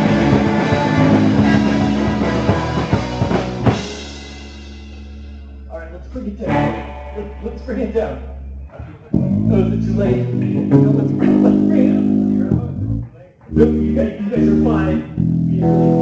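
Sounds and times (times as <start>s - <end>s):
electric guitar: 0.0s - 5.7s, 6.4s - 16.0s
bass guitar: 0.0s - 16.0s
live band playing: 0.0s - 16.0s.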